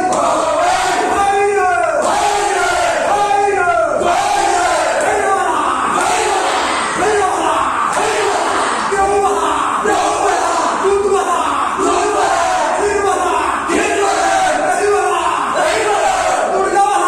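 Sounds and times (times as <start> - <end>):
men chanting and shouting: 0.0 - 17.0.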